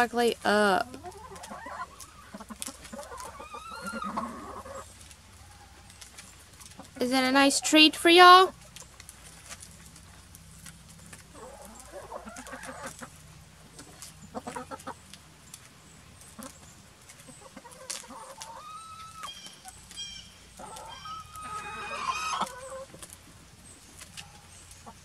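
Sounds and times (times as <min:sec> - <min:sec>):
hens clucking: 0:00.0 - 0:25.0.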